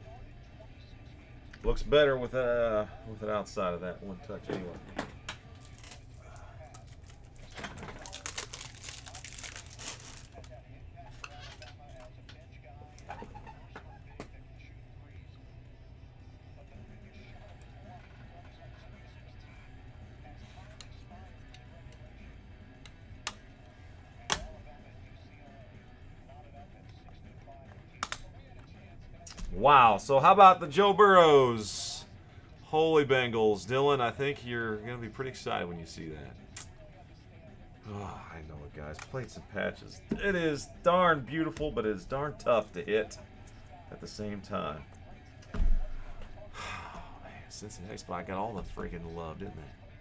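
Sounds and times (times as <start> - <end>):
plastic rustle: 5.6 - 10.5.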